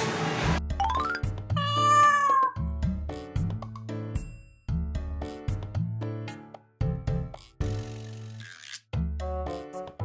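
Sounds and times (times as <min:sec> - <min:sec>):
cat meow: 0:01.6 - 0:02.7.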